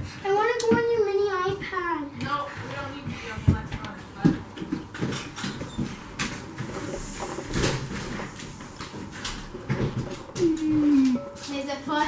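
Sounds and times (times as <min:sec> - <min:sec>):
falling voice-like tone: 0:10.4 - 0:11.3.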